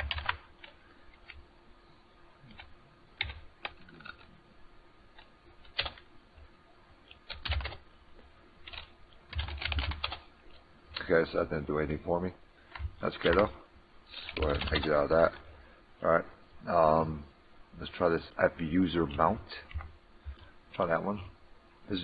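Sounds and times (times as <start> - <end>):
typing on computer keyboard: 0.0 - 1.4, 2.5 - 4.3, 5.2 - 6.1, 7.2 - 7.8, 8.6 - 10.2, 14.3 - 14.9.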